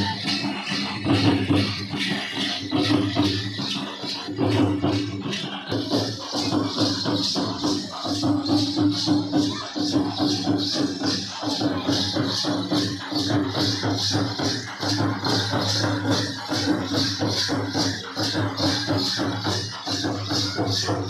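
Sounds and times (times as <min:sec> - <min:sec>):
drum strokes: 0:00.0 - 0:21.0
jingling bells beat: 0:00.0 - 0:21.0.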